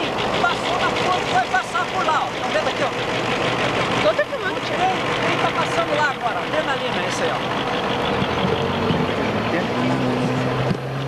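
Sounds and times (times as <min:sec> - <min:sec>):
man talking: 0:00.4 - 0:03.0.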